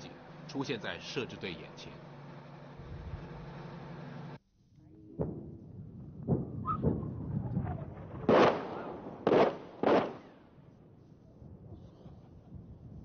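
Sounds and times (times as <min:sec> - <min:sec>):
distant artillery explosions: 0:05.0 - 0:10.7.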